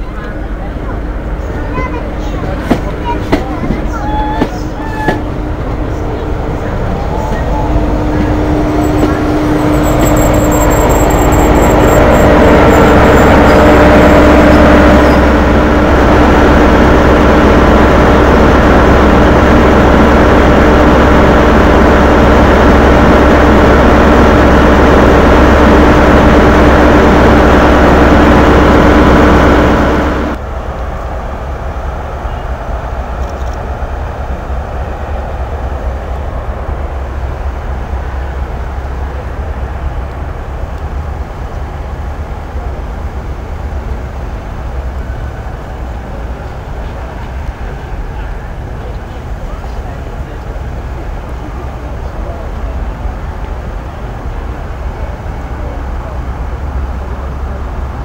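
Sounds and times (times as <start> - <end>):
diesel train engine droning: 0.0 - 58.0
station noise: 0.0 - 58.0.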